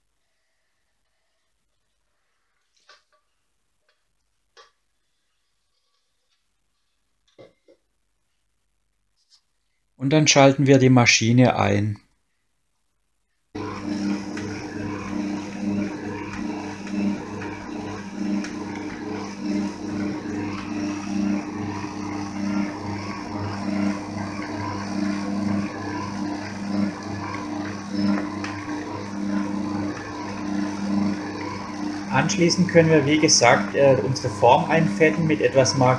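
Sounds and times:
stand mixer motor humming: 13.6 - 35.9.

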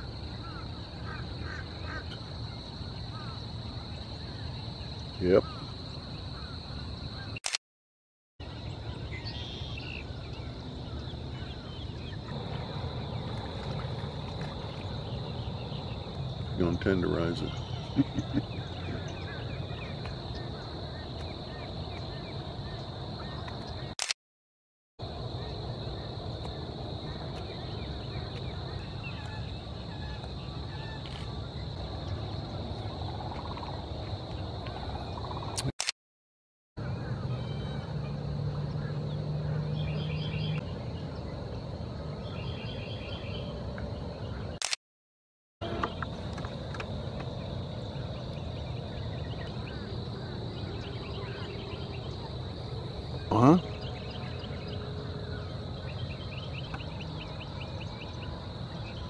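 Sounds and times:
insects chirring: 0.0 - 7.4, 8.4 - 24.0, 25.0 - 35.7, 45.6 - 59.0
faint bird calls: 0.3 - 7.4, 47.8 - 58.4
birds chirping and calling: 9.2 - 23.8
steady low rumble: 10.3 - 16.8.

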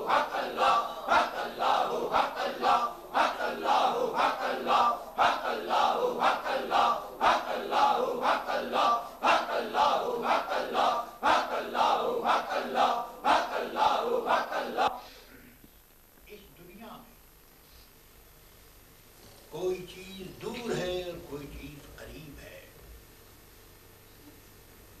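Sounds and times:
men chanting in unison: 0.0 - 15.0.

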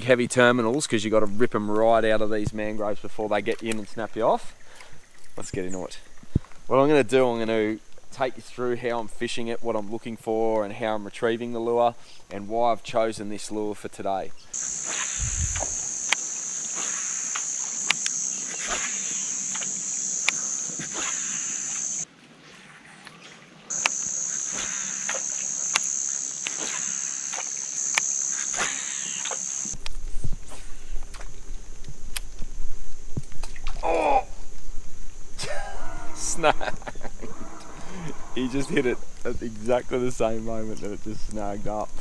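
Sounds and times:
high-pitched insect drone: 14.5 - 22.0, 23.7 - 29.8, 35.4 - 39.6
low rumbling noise: 15.2 - 15.9.

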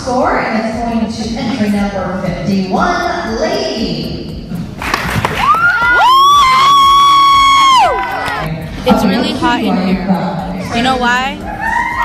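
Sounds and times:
girl screaming with excitement: 5.4 - 8.3, 11.4 - 12.0.

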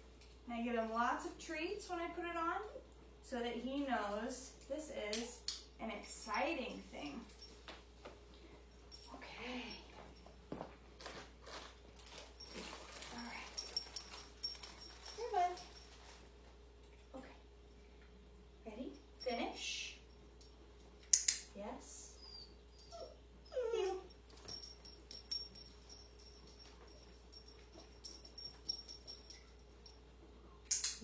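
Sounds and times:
puppy rustling and shuffling: 9.9 - 16.9
puppy whining: 22.2 - 29.2.

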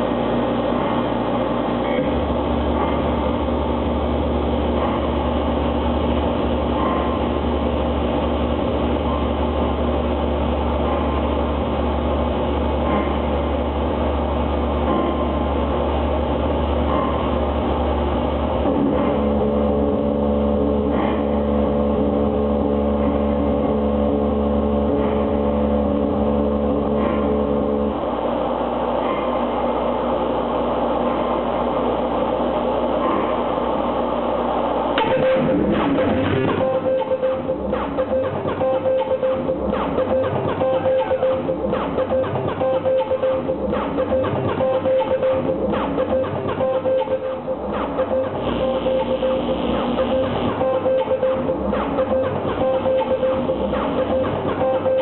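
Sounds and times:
electronic drone of held tones: 0.0 - 55.0.

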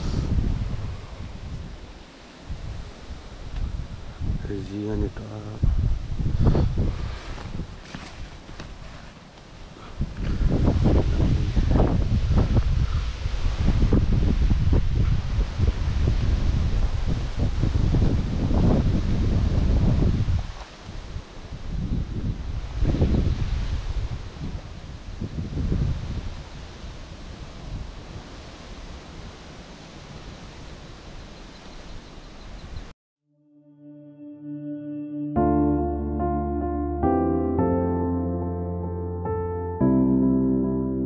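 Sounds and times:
rustling leaves: 0.0 - 32.9
wind buffeting microphone: 0.0 - 32.9.

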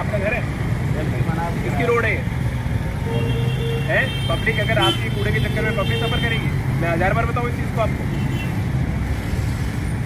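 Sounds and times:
hiss: 9.1 - 10.0.

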